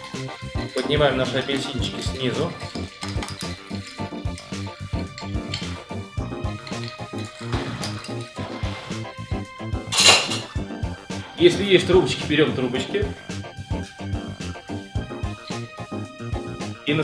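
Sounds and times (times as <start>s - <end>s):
background music with steady beat: 0.0s - 17.0s
spoon clinking ice in glass: 0.6s - 8.6s, 10.0s - 10.6s.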